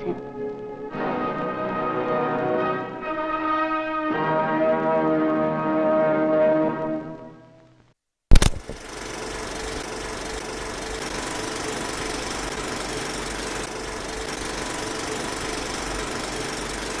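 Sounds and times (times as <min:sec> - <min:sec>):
film projector running: 0:08.3 - 0:17.0.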